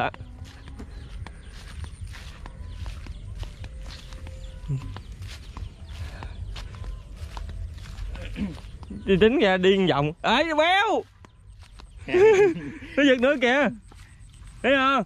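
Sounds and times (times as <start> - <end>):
steady low rumble: 0.0 - 9.3
footsteps on straw and grass: 0.0 - 15.0.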